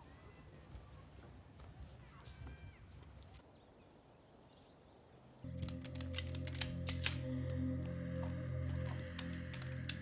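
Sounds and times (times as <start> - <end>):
sharp clicks: 5.5 - 7.6
low sustained musical drone: 5.5 - 10.0.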